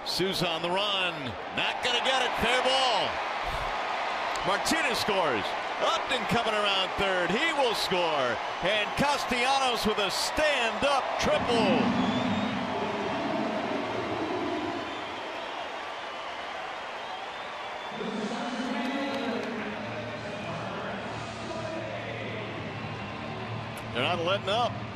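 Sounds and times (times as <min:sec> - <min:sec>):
crowd cheering: 0:00.0 - 0:24.9
music over stadium speakers: 0:18.0 - 0:24.9.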